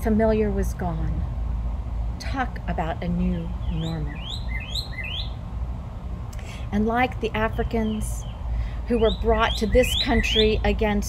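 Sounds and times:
low background rumble: 0:00.0 - 0:11.0
songbird chirping: 0:02.3 - 0:05.4, 0:06.4 - 0:11.0.

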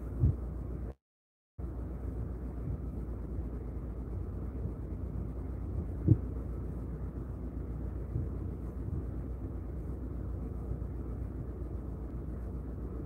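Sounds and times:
ship engine drone: 0:01.6 - 0:13.0.

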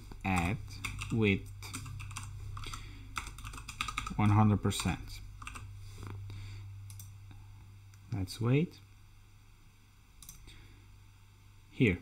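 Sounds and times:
computer keyboard typing: 0:00.3 - 0:05.7.

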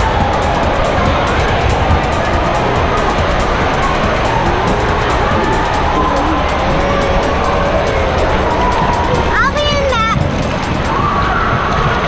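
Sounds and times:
rushing water: 0:00.0 - 0:12.0.

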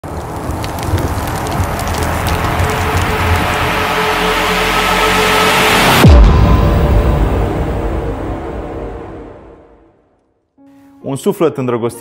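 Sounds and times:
noisy riser with crackles: 0:00.0 - 0:09.4
deep hit: 0:02.4 - 0:10.0.

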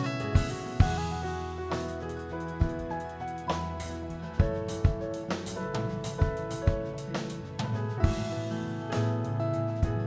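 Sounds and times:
acoustic guitar: 0:00.0 - 0:10.0
drum kit beat: 0:00.0 - 0:10.0
electric bass: 0:00.0 - 0:10.0.

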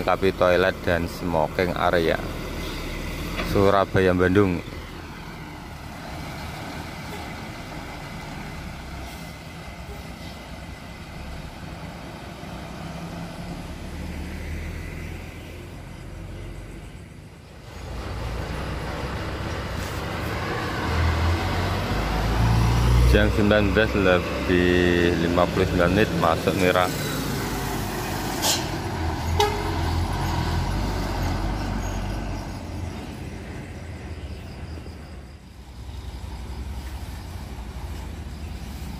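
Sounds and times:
coach diesel engines rumbling: 0:00.0 - 0:38.9.

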